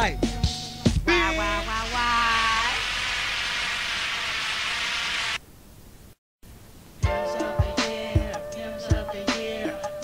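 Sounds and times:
steady hiss: 1.6 - 8.0
echoing held vocal: 7.0 - 10.0.

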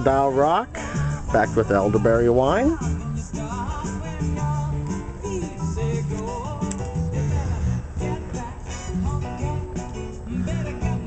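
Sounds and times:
pop song over speakers: 0.0 - 11.0.

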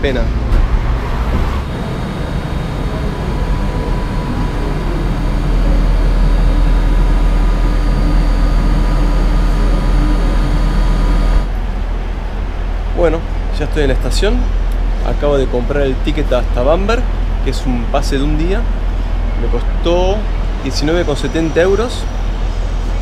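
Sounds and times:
electric train rumbling: 0.0 - 23.0
steady hum: 0.0 - 23.0.

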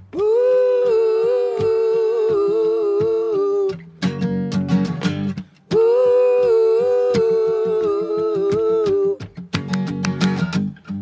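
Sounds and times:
hummed vocal melody: 0.0 - 3.9, 5.7 - 9.3
guitar: 0.0 - 11.0.

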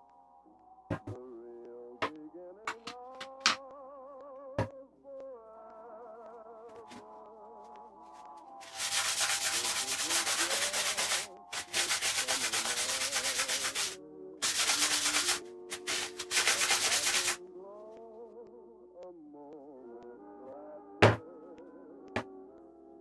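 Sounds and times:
soft background music: 0.0 - 23.0
paper towel scrubbing metal: 8.6 - 17.4.

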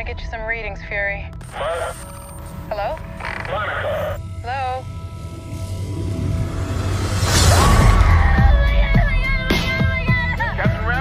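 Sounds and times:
low rumble: 0.0 - 1.4, 4.2 - 10.0.

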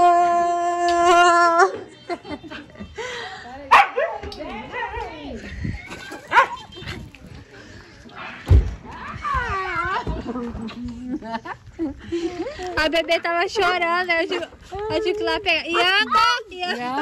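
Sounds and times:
dogs barking and yipping: 6.0 - 7.0
low thud: 8.4 - 9.0.

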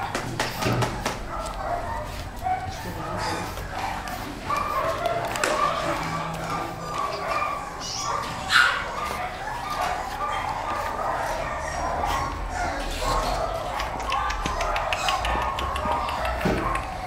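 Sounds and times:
dog barking: 0.0 - 17.0.

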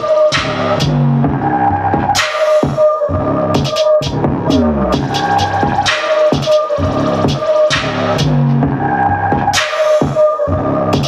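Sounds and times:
hip-hop beat: 0.0 - 11.0
looped sampled melody: 0.0 - 11.0
bass line: 0.3 - 2.2, 3.0 - 5.9, 6.8 - 9.6, 10.5 - 11.0.

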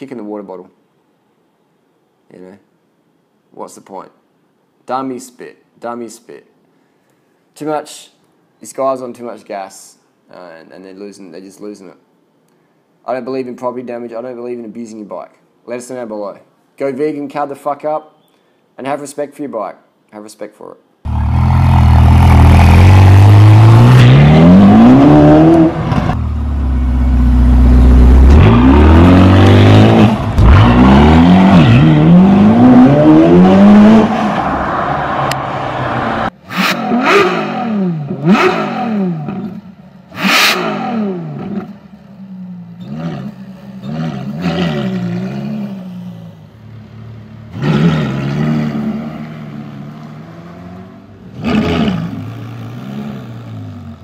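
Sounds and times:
car engine accelerating hard: 21.1 - 39.6
engine revving: 21.1 - 41.8, 42.8 - 46.1, 47.5 - 54.0.

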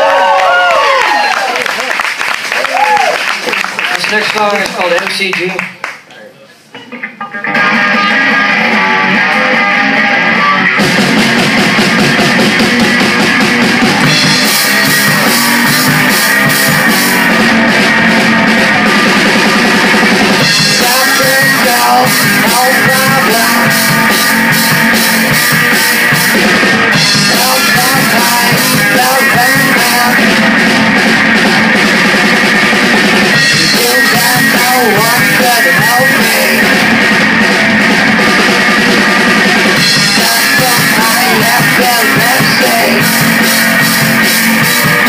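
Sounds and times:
electric guitar: 6.7 - 45.0
rock band playing: 6.7 - 45.0.

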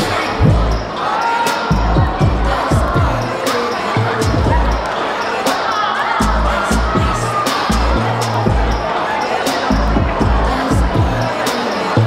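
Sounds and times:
person singing: 0.0 - 12.0
pop song over loudspeakers: 0.0 - 12.0
deep bass drum: 0.4 - 0.8, 1.8 - 3.2, 6.3 - 8.7, 9.8 - 11.2.

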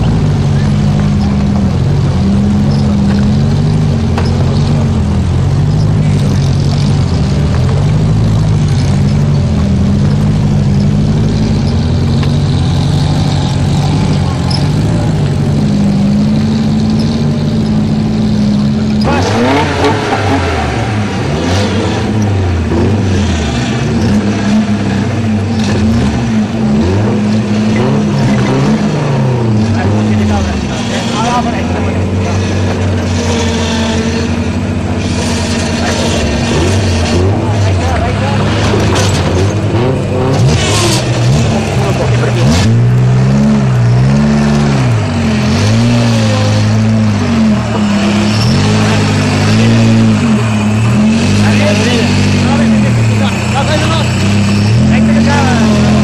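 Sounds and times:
engine idling: 0.0 - 56.0
engine revving under load: 0.0 - 56.0.

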